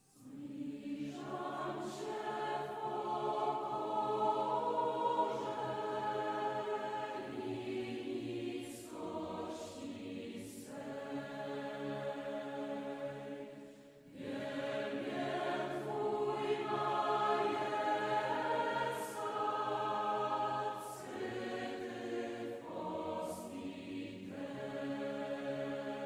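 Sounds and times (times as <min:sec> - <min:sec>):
voices singing a hymn: 0:00.1 - 0:26.0.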